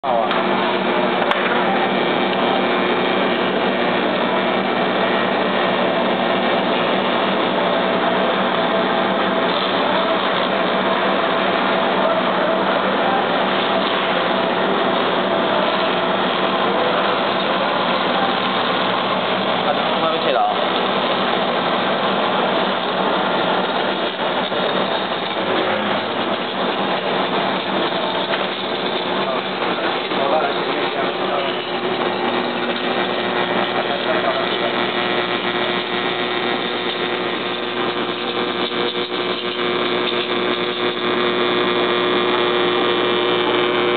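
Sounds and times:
cutting machine running: 0.0 - 43.9
voices chattering: 0.0 - 43.9.

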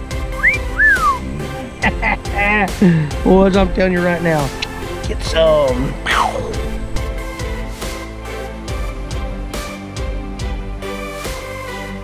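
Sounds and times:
background music: 0.0 - 12.0
person wolf whistling: 0.3 - 1.5.

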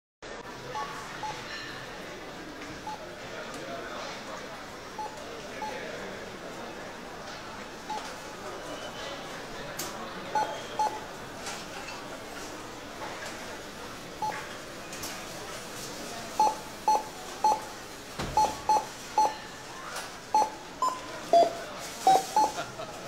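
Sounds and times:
murmur of shoppers: 0.2 - 23.0
barcode scanner beeps: 5.0 - 5.8, 10.4 - 11.0, 14.2 - 14.5, 16.3 - 17.7, 18.3 - 19.4, 20.3 - 22.6.

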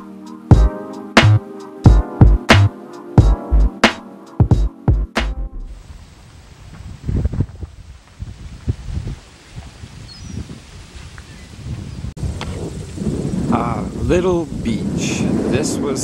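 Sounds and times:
background music: 0.0 - 5.7
wind buffeting microphone: 5.7 - 16.0
faint bird chirp: 10.0 - 10.5.

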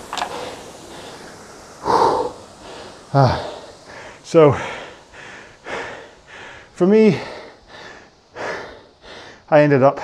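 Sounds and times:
man breathing hard: 0.0 - 10.0.

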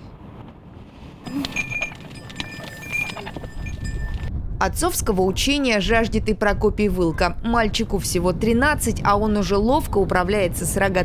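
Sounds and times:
herd rustling with clicks: 1.2 - 4.3
thin high ringing tones: 1.2 - 4.3.

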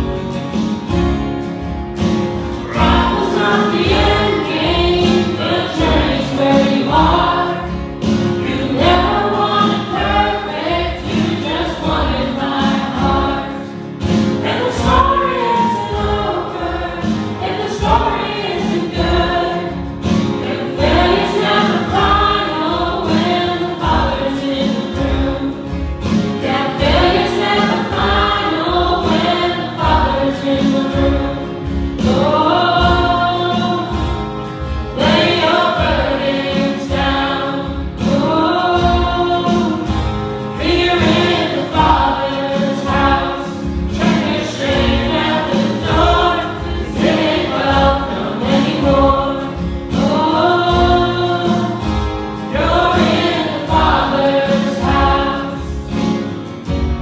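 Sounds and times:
strummed acoustic guitars: 0.0 - 57.0
people singing together: 2.4 - 57.0.

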